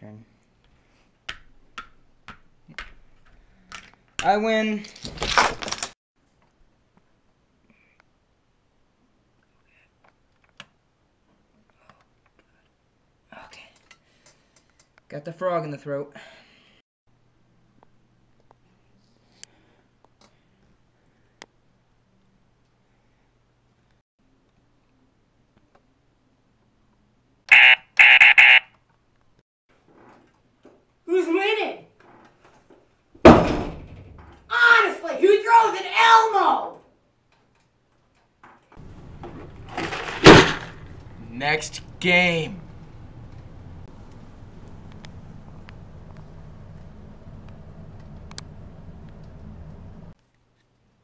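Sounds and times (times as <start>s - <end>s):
game buzzer buzzing: 27.5s - 28.6s
loud thump: 33.2s - 34.3s, 39.2s - 41.0s.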